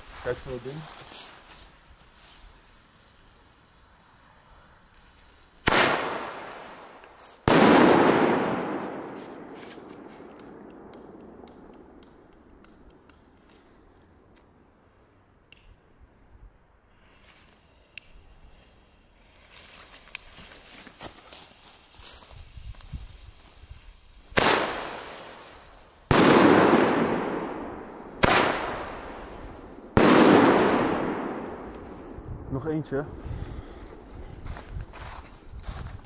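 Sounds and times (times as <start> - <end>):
firework launch bang: 5.6 - 11.2, 24.3 - 32.1
firework burst bang: 5.7 - 6.9, 26.1 - 31.9
faint scattered clicks: 10.3 - 14.6.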